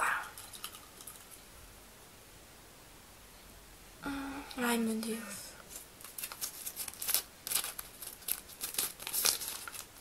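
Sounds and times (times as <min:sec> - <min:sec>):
paper crinkling: 0:05.7 - 0:10.0.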